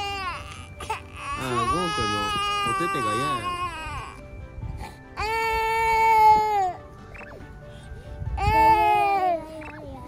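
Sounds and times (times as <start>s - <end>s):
toddler wailing: 0.0s - 4.2s, 5.2s - 6.8s, 8.4s - 10.0s.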